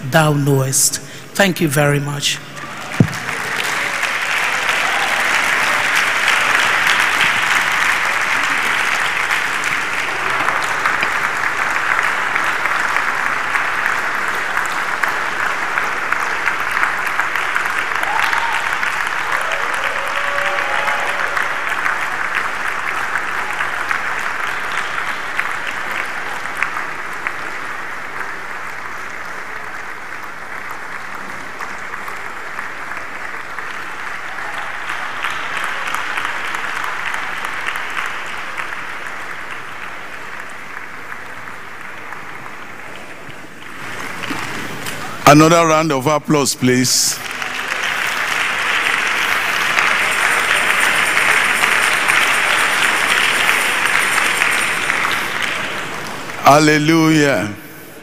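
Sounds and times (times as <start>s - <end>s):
large audience applauding: 1.1s - 58.0s.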